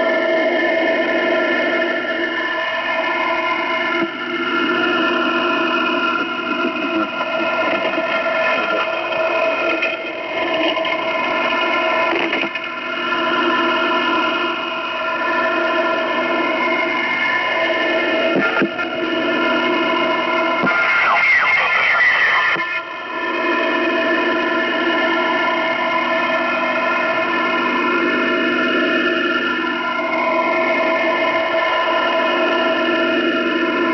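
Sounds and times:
steady radio tones: 0.0 - 33.9
radio static: 2.9 - 12.7, 15.1 - 26.3
radio hiss: 5.9 - 9.6, 17.6 - 23.0.

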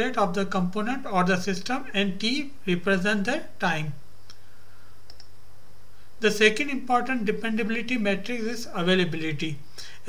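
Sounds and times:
steady low hum: 0.0 - 10.0
faint computer clicks: 4.2 - 5.4.

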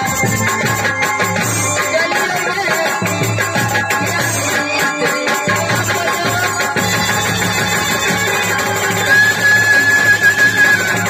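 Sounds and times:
folk band music: 6.8 - 11.0.

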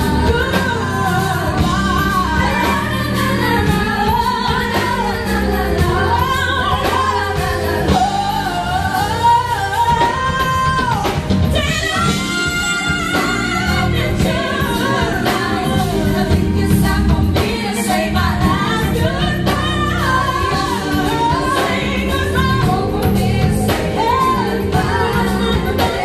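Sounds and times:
band playing: 0.0 - 26.0
woman singing into a microphone: 0.0 - 26.0.

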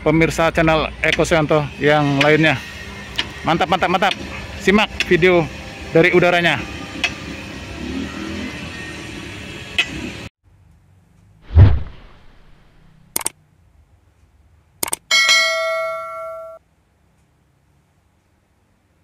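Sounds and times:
outdoor background noise: 6.7 - 19.0
loud low whoosh: 11.5 - 13.0
sharp clicks: 11.8 - 13.3, 14.8 - 15.0
bell chime: 15.1 - 16.6.

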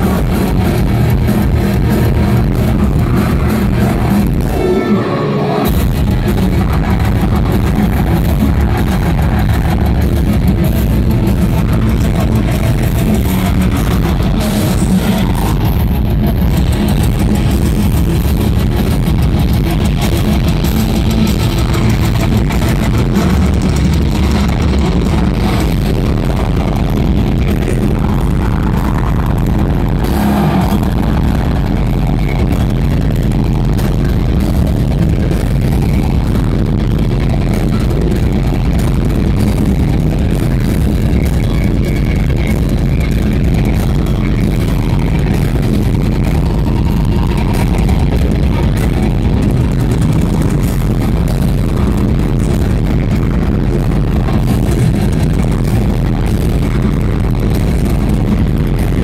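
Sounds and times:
heavy metal band playing live: 0.0 - 59.0.

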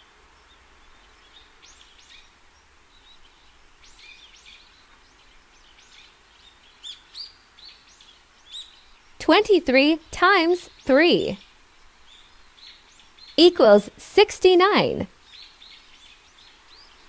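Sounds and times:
small birds chirping: 0.0 - 14.0, 15.1 - 17.0.

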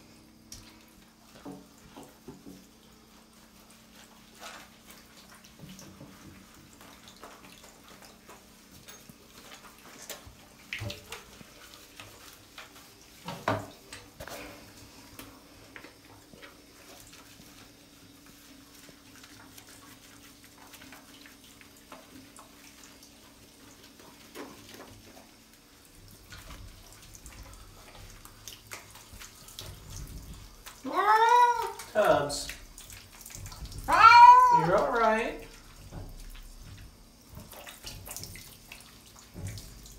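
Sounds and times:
faint running shower water: 0.0 - 39.9
cat meowing loudly: 30.8 - 31.8, 33.9 - 35.4.

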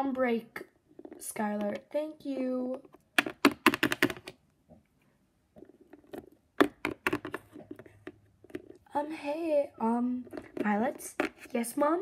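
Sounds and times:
plastic toys clicking and tapping: 2.6 - 4.4, 5.8 - 8.8.

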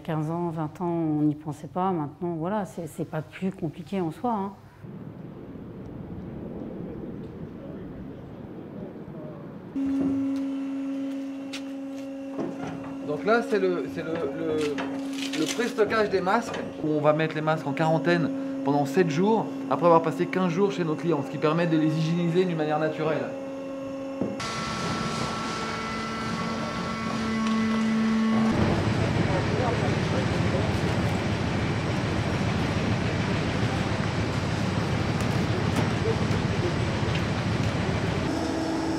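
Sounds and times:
low machine hum: 4.7 - 38.9.

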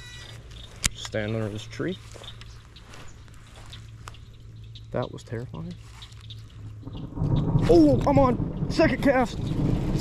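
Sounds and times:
steady low hum: 0.0 - 10.0
light rain: 6.6 - 10.0.

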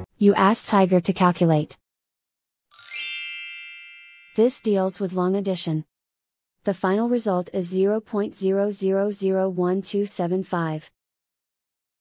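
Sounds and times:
bright chime ding: 2.7 - 4.5.

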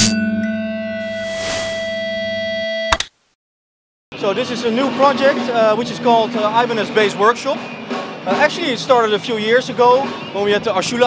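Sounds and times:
jingle with ringing guitar chord: 0.0 - 2.9.

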